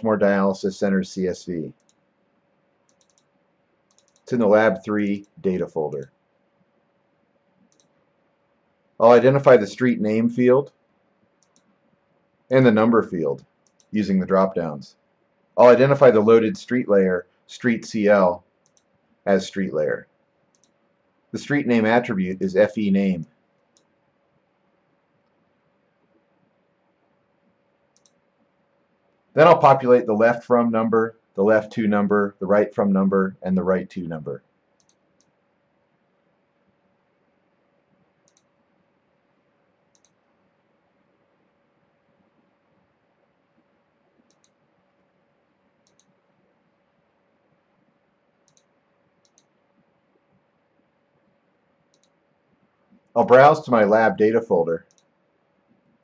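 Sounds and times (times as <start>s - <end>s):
faint computer mouse click: 2.9s - 3.3s, 3.9s - 4.3s, 7.7s - 8.0s, 11.4s - 11.7s, 13.6s - 13.9s, 18.6s - 18.9s, 20.5s - 20.8s, 27.9s - 28.2s, 34.8s - 35.4s, 38.2s - 38.5s, 39.9s - 40.2s, 44.2s - 44.7s, 45.8s - 46.2s, 48.4s - 49.6s, 51.9s - 52.2s, 54.9s - 55.1s.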